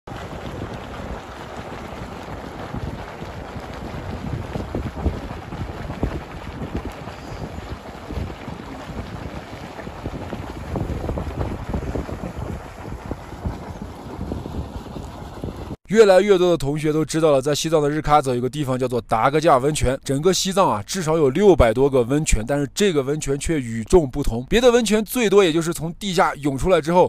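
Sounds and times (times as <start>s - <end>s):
geyser rushing and spraying: 0.1s - 15.8s
wind buffeting microphone: 0.1s - 15.8s.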